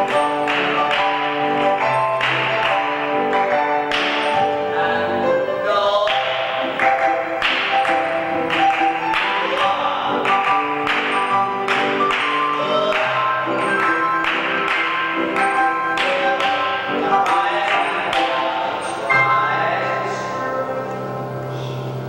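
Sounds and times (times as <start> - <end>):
piano chords on steady beat: 0.0 - 22.0.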